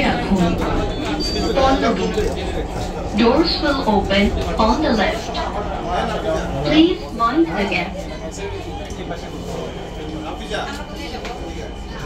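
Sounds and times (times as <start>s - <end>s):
train low rumble: 0.0s - 12.0s
voices talking: 0.0s - 12.0s.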